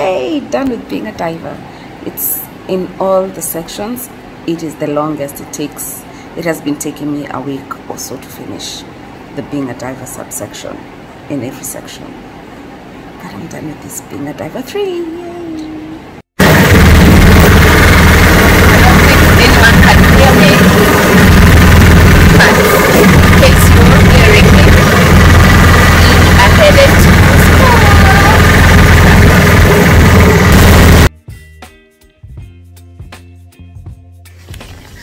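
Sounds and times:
small engine running: 16.4s - 31.1s.

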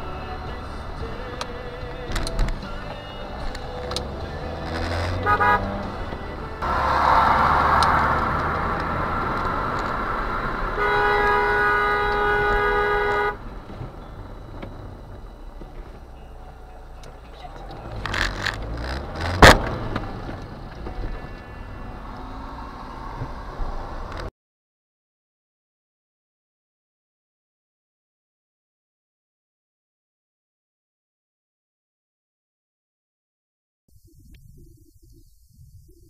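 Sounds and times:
road and engine noise: 0.0s - 24.3s
car horn: 4.6s - 8.3s, 10.3s - 13.6s, 20.8s - 23.4s.

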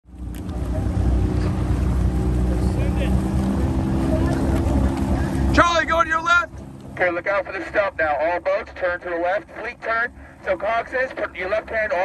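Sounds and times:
outboard motor droning: 0.1s - 12.0s
water and wind noise: 0.1s - 12.0s
man calling out loudly: 5.5s - 8.4s.

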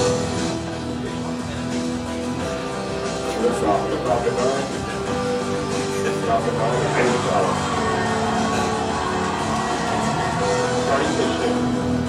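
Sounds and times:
music with sustained notes over speakers: 0.0s - 12.0s.

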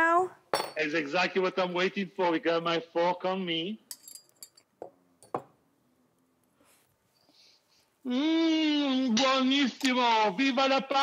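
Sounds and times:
forks clinking on plates: 3.9s - 5.4s.

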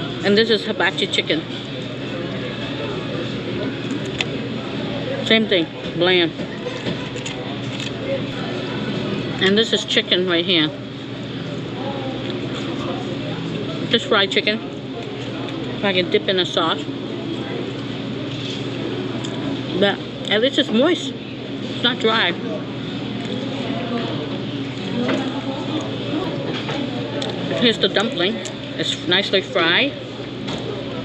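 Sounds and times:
restaurant murmur: 0.0s - 31.0s.

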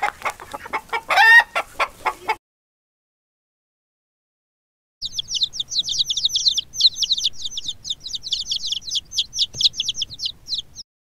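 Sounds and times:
chicks peeping: 0.0s - 2.4s, 5.0s - 10.8s.

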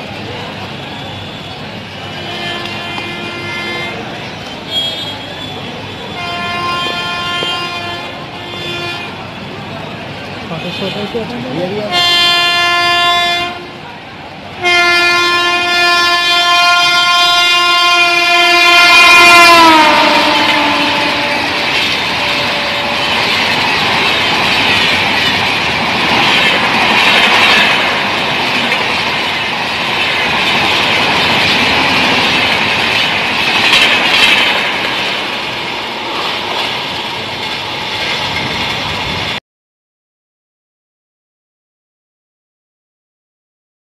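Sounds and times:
electric locomotive horn: 0.9s - 9.3s, 11.9s - 13.8s, 14.6s - 23.4s.

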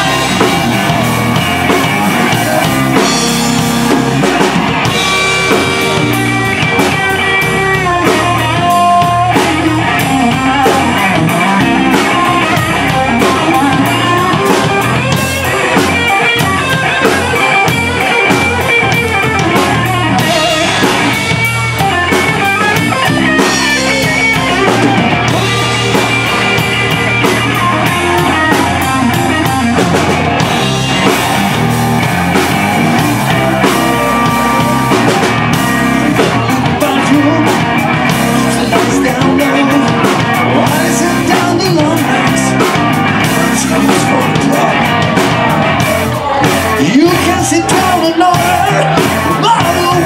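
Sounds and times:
drum kit beat: 0.0s - 50.0s
electric guitar bending notes: 0.0s - 50.0s.

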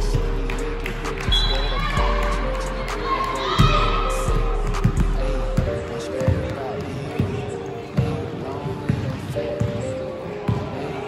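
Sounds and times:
music in hall: 0.0s - 11.0s.

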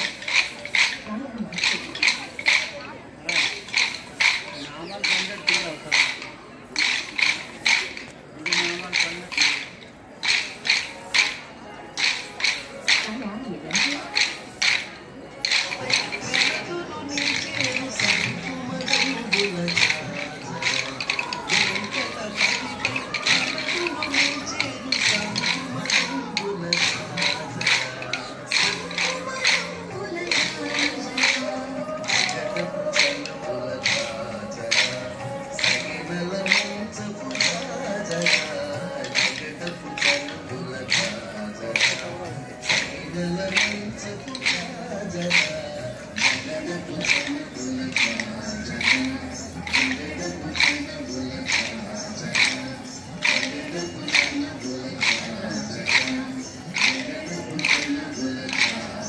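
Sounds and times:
accompanying melody: 0.0s - 59.0s
dance sticks clacking together: 0.0s - 59.0s.

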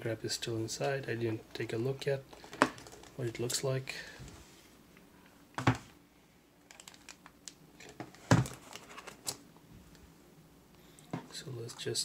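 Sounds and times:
cardboard and plastic rustling: 7.8s - 9.4s.

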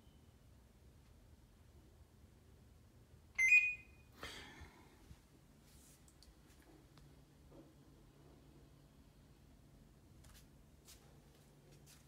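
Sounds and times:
electronic doorbell tone: 3.4s - 4.0s.

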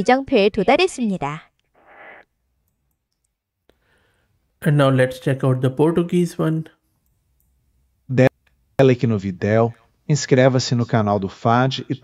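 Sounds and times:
faint breathy hiss: 1.8s - 2.3s, 3.7s - 4.6s.

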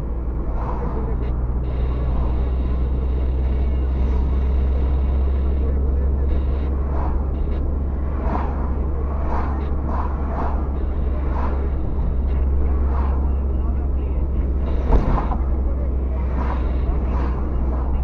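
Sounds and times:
car cabin engine and tyre rumble: 0.0s - 18.0s
muffled voices: 0.0s - 18.0s.

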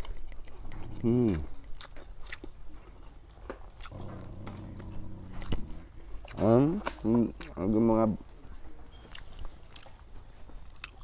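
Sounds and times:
closed-mouth hum: 0.0s - 11.0s
man chewing with mouth smacks: 0.0s - 11.0s.

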